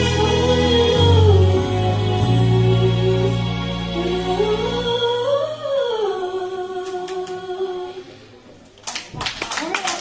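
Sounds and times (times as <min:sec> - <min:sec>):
woman singing unaccompanied: 0:00.0 - 0:08.0.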